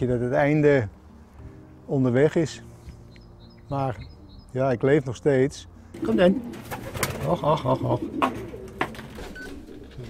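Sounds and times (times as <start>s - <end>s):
pigeons cooing: 6.0s - 10.0s.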